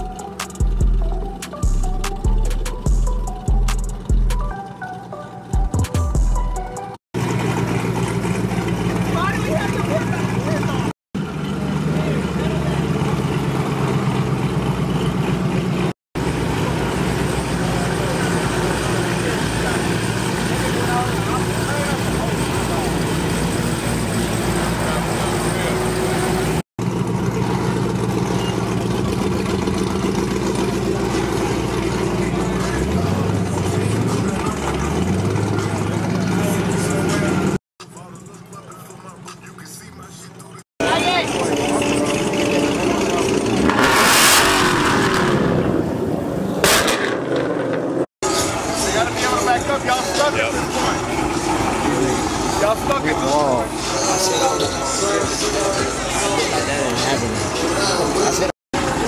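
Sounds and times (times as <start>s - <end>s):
car engines idling: 0.0s - 59.0s
engine revving: 7.2s - 59.0s
background voices: 48.3s - 59.0s.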